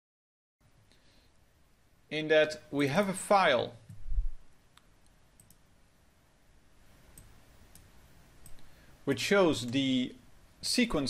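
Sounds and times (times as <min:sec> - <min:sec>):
computer mouse clicks: 0:04.8 - 0:05.6, 0:07.1 - 0:08.7.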